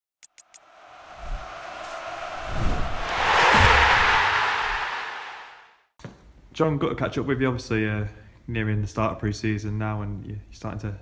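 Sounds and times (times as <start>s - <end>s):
rushing whoosh: 0.6s - 5.8s
low thuds: 0.8s - 5.5s.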